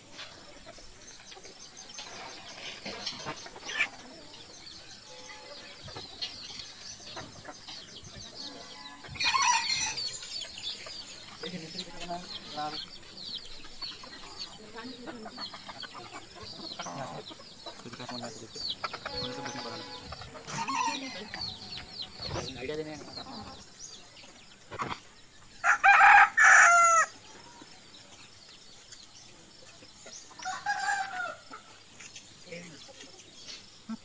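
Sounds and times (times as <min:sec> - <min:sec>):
chickens clucking: 0:00.0 - 0:34.0.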